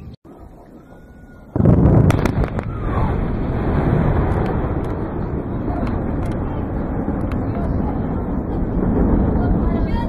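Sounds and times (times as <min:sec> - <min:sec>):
low rumble with sharp cracks: 0:00.3 - 0:10.0
explosion boom: 0:01.4 - 0:10.0.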